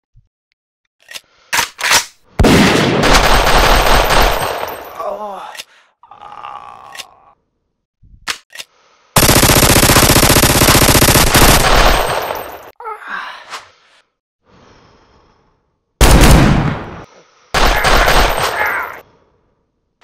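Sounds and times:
rapid automatic gunfire: 0:02.4 - 0:04.7, 0:09.2 - 0:12.7, 0:17.6 - 0:19.0
single gunshots: 0:02.4 - 0:04.8, 0:16.0 - 0:17.0, 0:17.6 - 0:19.0
pained vocal cries: 0:05.0 - 0:07.4, 0:12.8 - 0:13.5.

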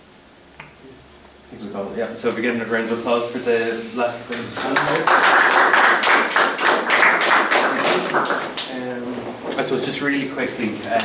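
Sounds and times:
audience applauding: 0:04.3 - 0:08.9.

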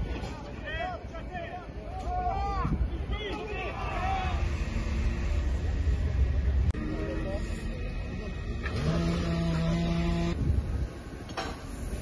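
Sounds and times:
vehicle engines: 0:00.0 - 0:12.0
steady engine drone: 0:03.6 - 0:11.2
low rumble: 0:03.6 - 0:12.0
people's voices: 0:06.7 - 0:10.0.

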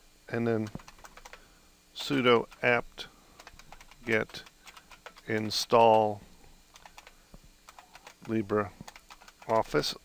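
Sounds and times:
keyboard typing: 0:00.6 - 0:01.4, 0:03.4 - 0:06.1, 0:06.7 - 0:09.8.

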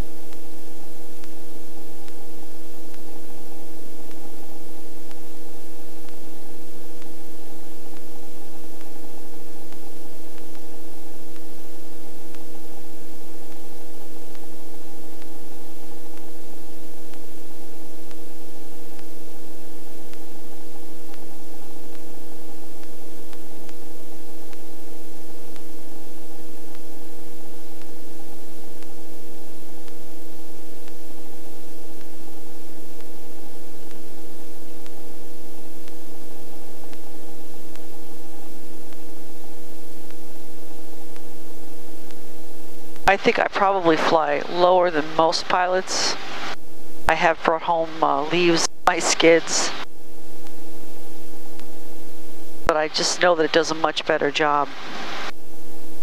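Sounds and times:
constant rushing hiss: 0:00.0 - 0:56.0.

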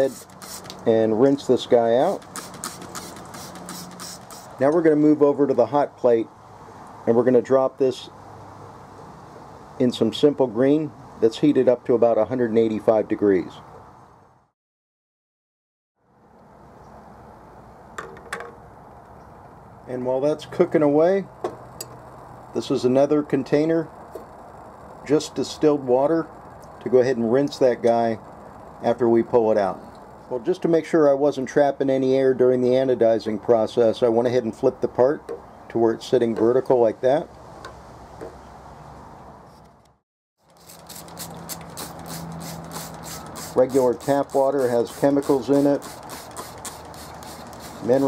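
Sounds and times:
trigger sprayer squirting: 0:00.0 - 0:00.9, 0:02.0 - 0:04.6, 0:40.4 - 0:48.0
low steady hiss: 0:16.3 - 0:39.2.

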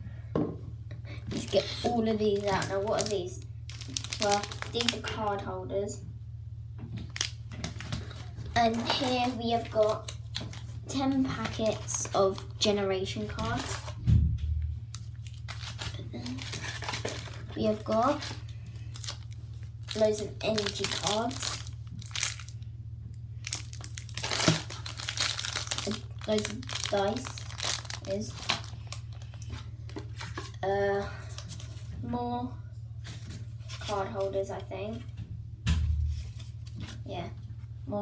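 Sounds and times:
low hum: 0:00.0 - 0:38.0
plastic sleeves rustling: 0:01.1 - 0:05.4, 0:07.0 - 0:14.0, 0:14.9 - 0:22.7, 0:23.4 - 0:32.2, 0:33.0 - 0:35.1, 0:35.9 - 0:37.8
plastic packaging crinkling: 0:01.2 - 0:05.2, 0:07.0 - 0:14.0, 0:14.9 - 0:22.6, 0:23.4 - 0:32.0.

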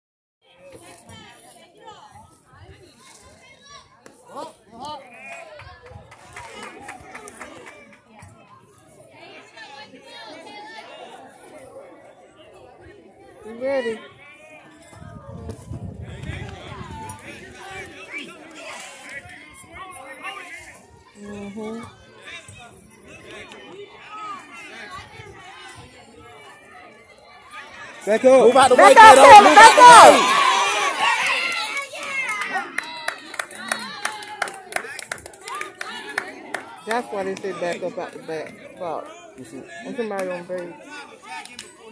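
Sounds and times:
faint chatter of voices: 0:00.4 - 0:41.9
children calling out: 0:28.8 - 0:32.6
hand claps: 0:32.3 - 0:37.8.

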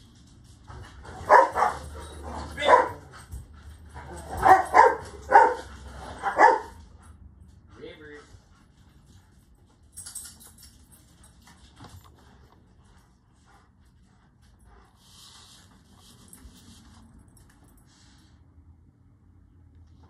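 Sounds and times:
dog barking: 0:01.2 - 0:03.1, 0:04.2 - 0:06.8.

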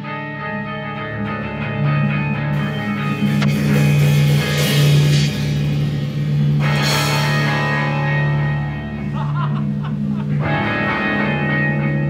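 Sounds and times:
rock band playing loud: 0:00.0 - 0:12.0
cymbal crash: 0:02.6 - 0:09.0.

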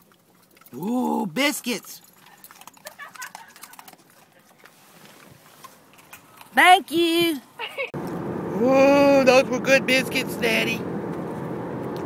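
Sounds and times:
dogs crunching biscuits: 0:00.0 - 0:06.6.

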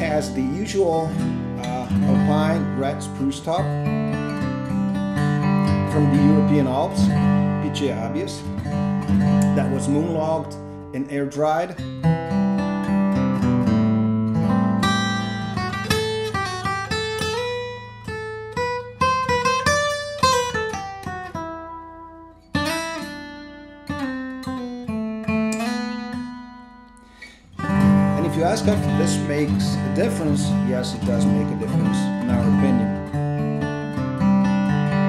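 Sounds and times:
acoustic guitar picked melody: 0:00.0 - 0:35.0.

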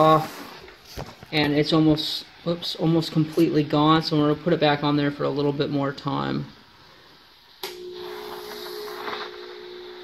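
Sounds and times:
carpet steamer humming and hissing: 0:00.0 - 0:10.0.

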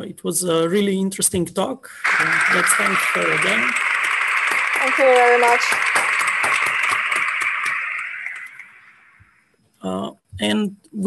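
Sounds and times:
people applauding: 0:02.0 - 0:09.4.

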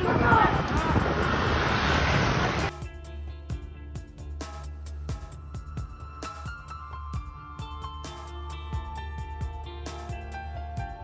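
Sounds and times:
wind on microphone: 0:00.0 - 0:02.7
background music: 0:02.7 - 0:11.0.

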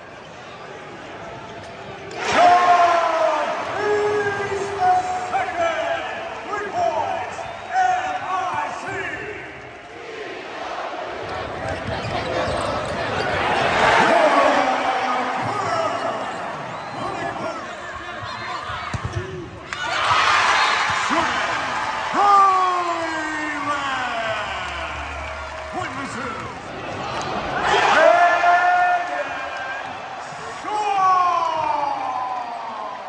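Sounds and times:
crowd cheering: 0:13.2 - 0:33.0.

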